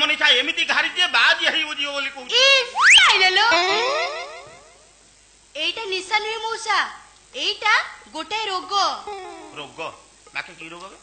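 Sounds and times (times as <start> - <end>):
swooping boing glide: 3.5 - 4.9.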